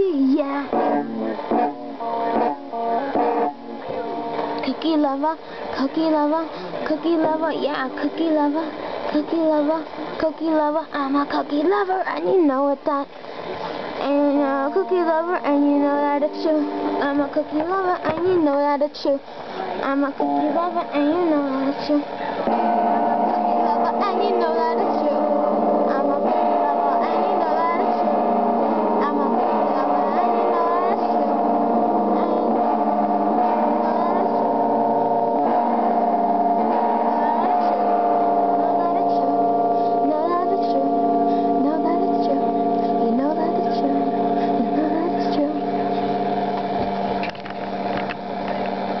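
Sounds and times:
hum of held tones: 0.0 - 49.0
sustained electronic chord: 0.0 - 49.0.

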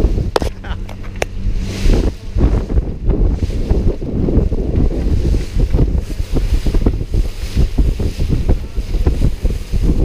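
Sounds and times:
boat engine hum: 0.0 - 10.0
wind buffeting microphone: 0.0 - 10.0.

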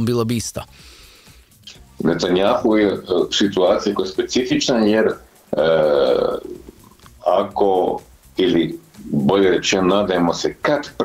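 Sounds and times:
man's drawn-out hesitation vowel: 5.5 - 9.4.

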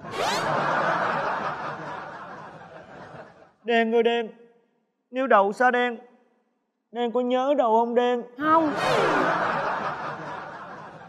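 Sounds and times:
audience laughter: 0.0 - 3.6, 8.5 - 11.0.

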